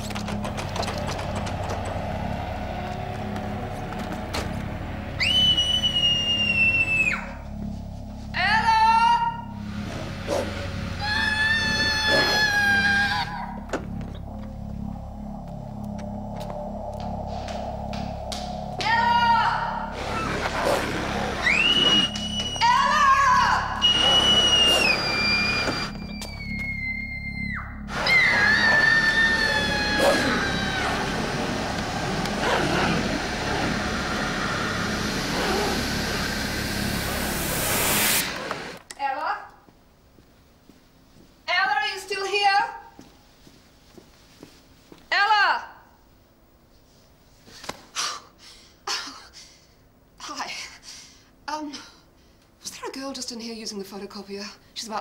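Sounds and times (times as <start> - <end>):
low repeating pulse: 0.0 - 38.8
suspense music: 0.0 - 38.8
high held tones sliding downward: 0.3 - 38.8
wavering high-pitched notes: 0.8 - 37.5.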